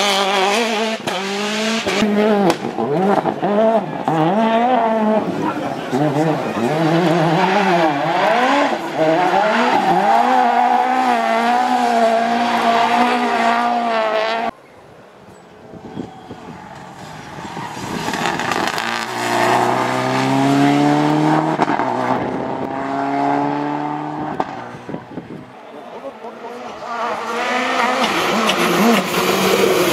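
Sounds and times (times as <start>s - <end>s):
rally car engine revving hard: 0.0s - 14.5s, 17.0s - 24.9s, 26.4s - 29.9s
rally car engine approaching: 15.6s - 29.9s.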